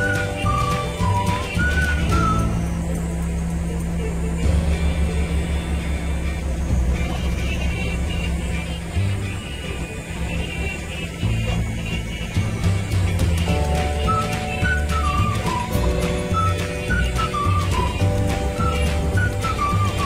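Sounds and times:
background music: 0:00.0 - 0:20.0
low bass line: 0:00.0 - 0:20.0.

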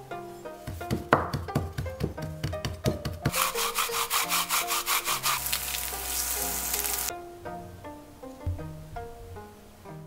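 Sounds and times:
light background music: 0:00.0 - 0:10.0
knife scraping on cutting board: 0:03.3 - 0:06.3
meat sizzling in a pan: 0:05.1 - 0:07.1.

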